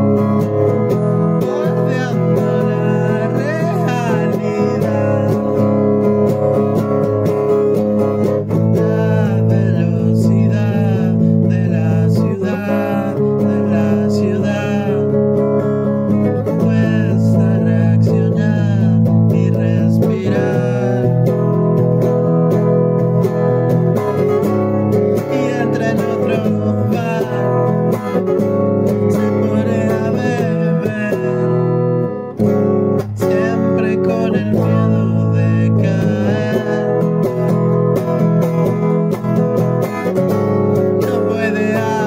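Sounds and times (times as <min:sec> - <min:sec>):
guitar playing: 0:00.0 - 0:42.0
man singing: 0:00.0 - 0:42.0.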